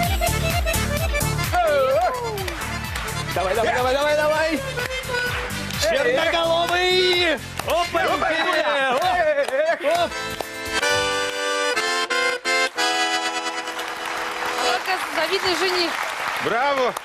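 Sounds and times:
button accordion chords: 0.0s - 8.2s, 9.8s - 15.8s
applause: 1.5s - 10.5s, 13.4s - 17.0s.

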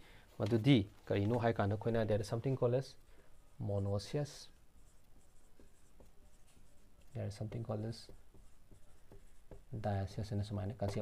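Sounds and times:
marker pen writing on whiteboard: 3.3s - 11.0s.

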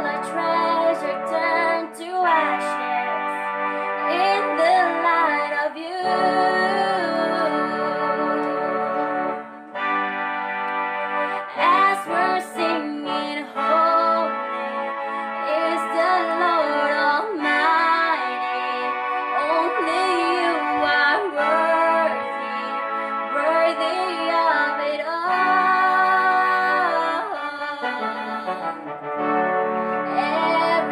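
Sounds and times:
woman singing slow melody: 0.0s - 9.1s, 11.5s - 14.4s, 15.4s - 28.8s, 30.1s - 30.9s
electronic keyboard chords: 0.0s - 30.9s.

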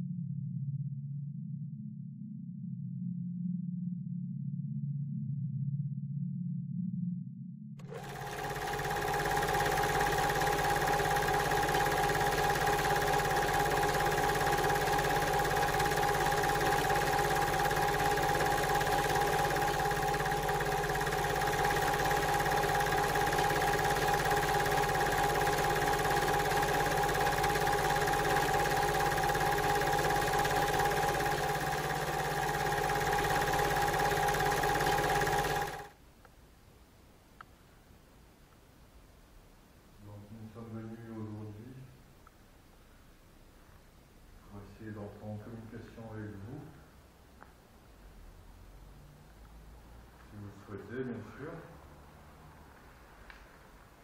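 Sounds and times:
film projector whirring: 7.8s - 36.0s.

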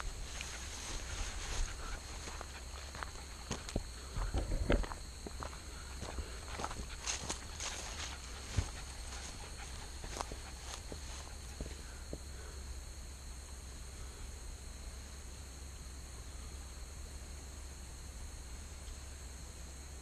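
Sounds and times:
footsteps on gravel: 0.0s - 11.9s.

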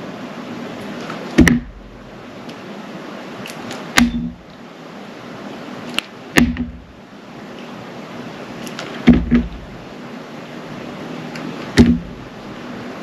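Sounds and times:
steady hiss: 0.0s - 13.0s
dull thud: 1.4s - 2.0s, 4.0s - 4.4s, 6.4s - 7.0s, 9.0s - 9.8s, 11.8s - 12.3s.

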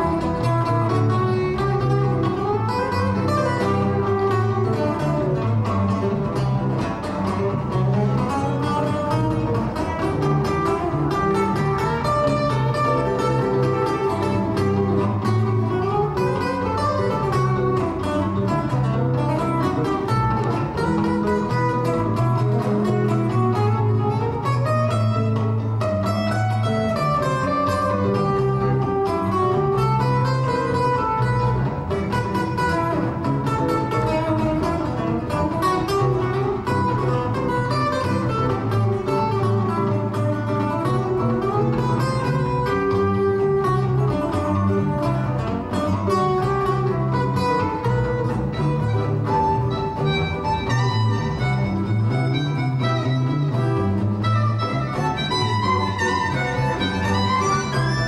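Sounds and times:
electric bass line: 0.0s - 58.0s
plucked acoustic guitar: 0.0s - 58.0s.

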